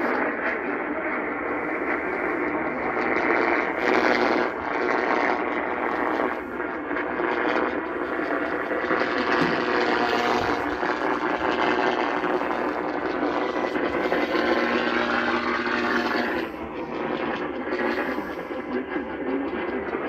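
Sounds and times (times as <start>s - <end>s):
radio static broadcast: 0.0s - 20.0s.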